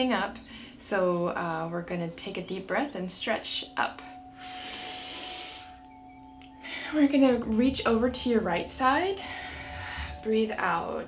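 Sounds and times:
faint background music: 0.0 - 11.0
woman inhaling deeply: 4.4 - 5.8, 9.2 - 10.2.

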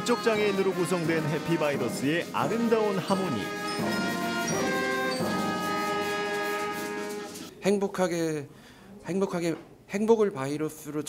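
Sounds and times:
band playing held chords: 0.0 - 7.5.

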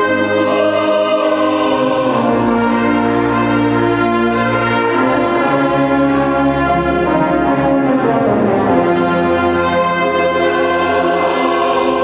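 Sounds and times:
choir singing: 0.0 - 12.0
wind band playing sustained chords: 0.0 - 12.0.

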